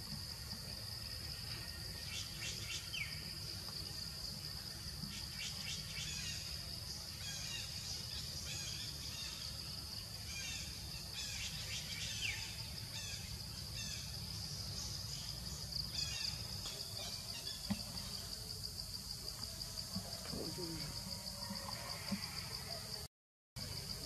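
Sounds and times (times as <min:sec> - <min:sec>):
high-pitched insect drone: 0:15.5 - 0:23.1.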